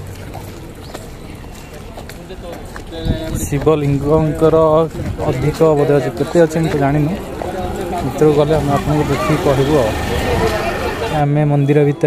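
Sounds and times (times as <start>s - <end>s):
faint scattered voices: 0.0s - 12.0s.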